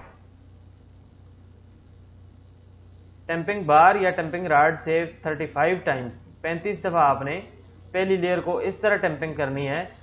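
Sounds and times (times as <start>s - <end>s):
low hum: 0.0s - 3.6s
light hiss: 0.0s - 3.8s
high-pitched whine: 0.0s - 10.0s.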